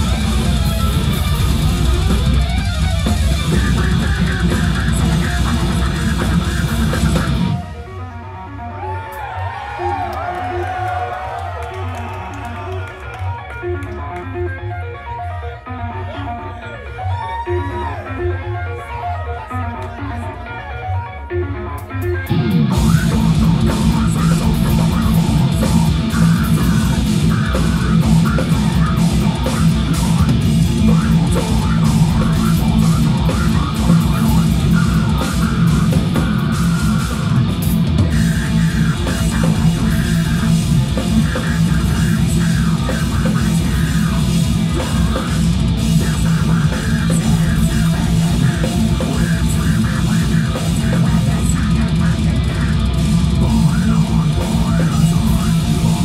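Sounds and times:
fast drum kit playing: 0:00.0 - 0:07.6, 0:22.2 - 0:56.0
distorted electric guitars: 0:00.0 - 0:56.0.

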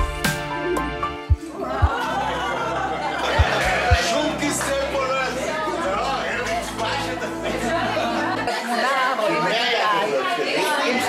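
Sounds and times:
low steady music: 0:00.0 - 0:08.9
people talking over one another: 0:01.7 - 0:11.0.

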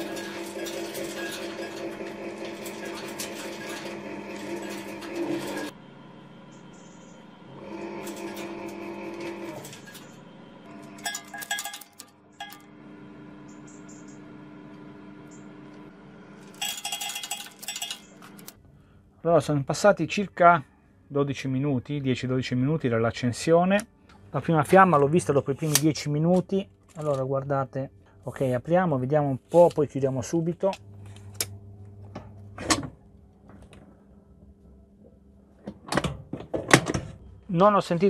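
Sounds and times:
boiler humming: 0:00.0 - 0:19.2, 0:30.2 - 0:37.9.

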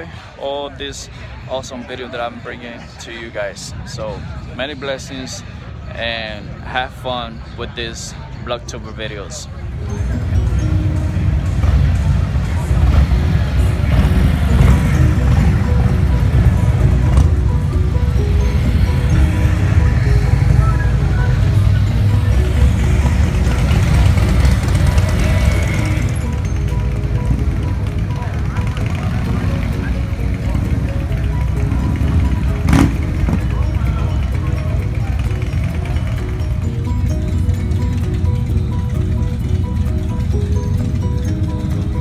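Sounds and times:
background music: 0:00.0 - 0:42.0
motorcycle engines rumbling: 0:00.0 - 0:42.0.

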